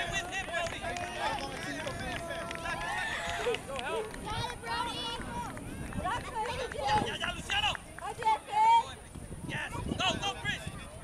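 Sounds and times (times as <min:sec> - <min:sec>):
voices shouting and calling: 0:00.0 - 0:11.0.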